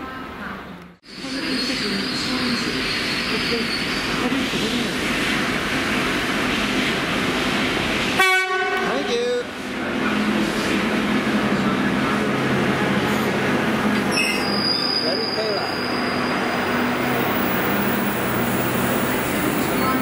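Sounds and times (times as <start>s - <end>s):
wheels squealing on rails: 1.1s - 5.5s, 14.0s - 20.0s
horn blast: 8.2s - 9.1s.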